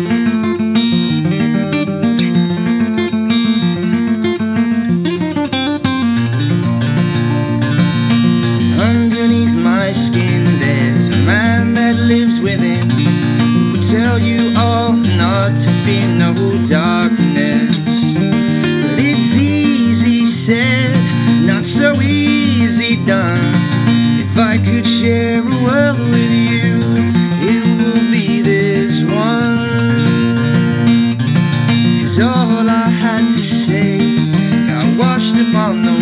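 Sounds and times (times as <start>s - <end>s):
acoustic guitar picked and strummed: 0.0s - 36.0s.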